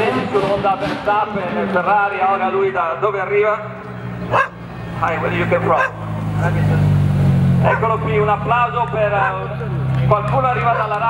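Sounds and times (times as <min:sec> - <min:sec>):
car engine low hum: 0:00.0 - 0:11.0
voices: 0:00.0 - 0:11.0.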